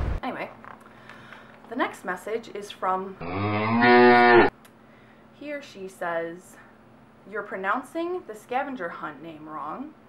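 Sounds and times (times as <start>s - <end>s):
cow mooing: 3.2s - 4.5s.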